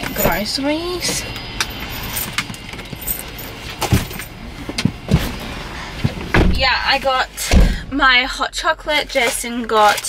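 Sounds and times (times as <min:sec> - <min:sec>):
metal chain strap rattling: 0:01.9 - 0:03.5
dull thumps: 0:06.0 - 0:06.9.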